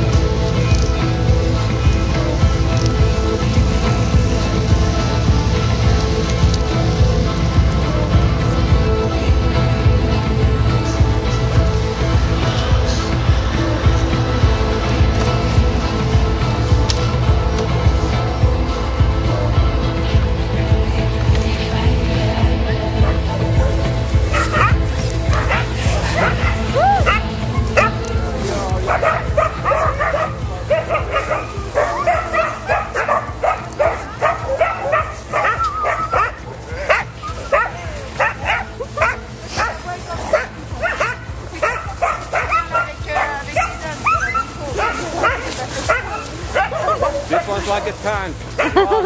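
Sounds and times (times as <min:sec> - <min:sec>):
sled dogs barking and yipping: 0:00.0 - 0:49.0.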